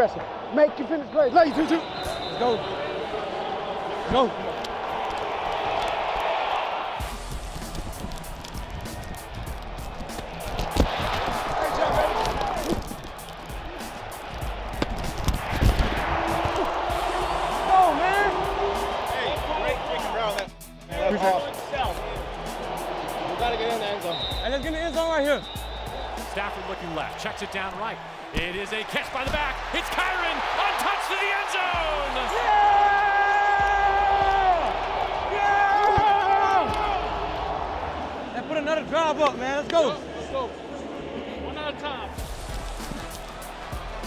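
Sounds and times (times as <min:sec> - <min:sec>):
footsteps and pad thuds: 0:07.0 - 0:17.0
indistinct shouting voices: 0:15.9 - 0:20.3, 0:28.5 - 0:38.0.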